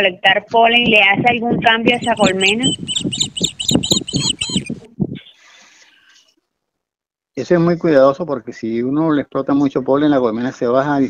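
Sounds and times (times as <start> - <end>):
bird chirping: 1.9 - 5.4.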